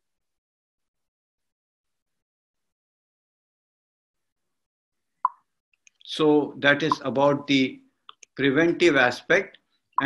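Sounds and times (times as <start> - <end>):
person speaking: 6.0 - 9.6.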